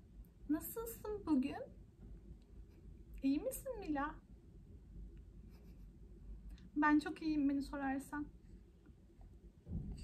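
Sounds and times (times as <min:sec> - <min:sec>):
woman speaking: 0:00.5 - 0:01.8, 0:03.2 - 0:04.2, 0:06.7 - 0:08.4.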